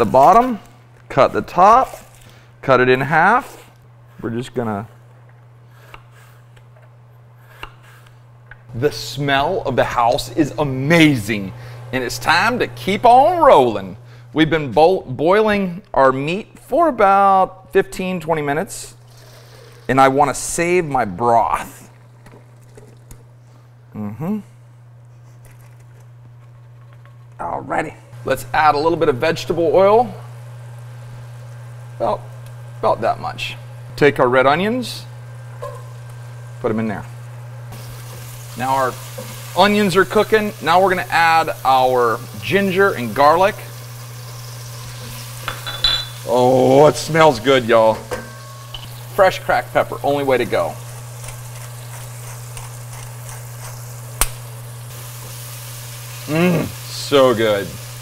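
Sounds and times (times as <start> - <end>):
steady low hum: 0.0 - 16.7
food sizzling in oil: 29.8 - 32.8, 35.1 - 58.0
low hum: 43.0 - 55.3.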